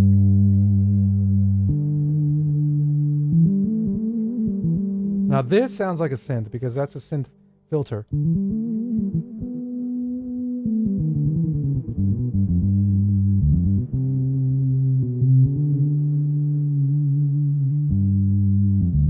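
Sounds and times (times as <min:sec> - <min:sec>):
synth bass held low notes: 0:00.0 - 0:06.3, 0:08.1 - 0:19.0.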